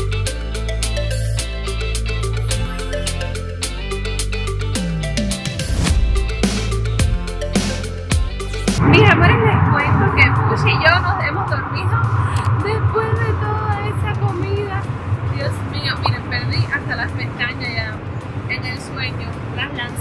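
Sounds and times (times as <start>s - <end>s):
jet cabin drone: 8.8s - 20.0s
woman talking: 8.8s - 20.0s.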